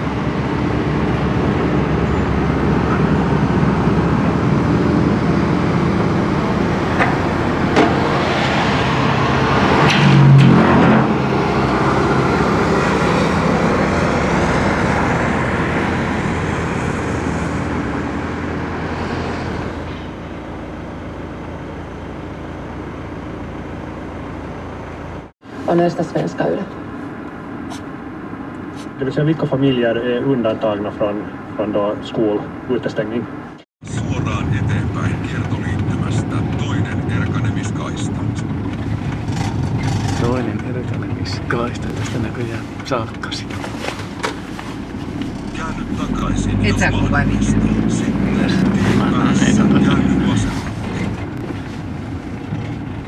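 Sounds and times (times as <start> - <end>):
car engine hum: 0.0 - 53.0
road noise: 0.0 - 53.0
low rumble and hiss: 28.7 - 43.9.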